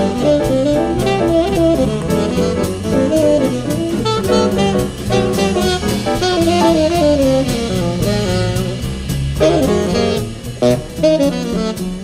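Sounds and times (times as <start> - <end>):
double bass: 0.0 - 12.0
drum kit with cymbal pulse: 0.0 - 12.0
piano: 0.0 - 12.0
horn melody: 5.6 - 7.6.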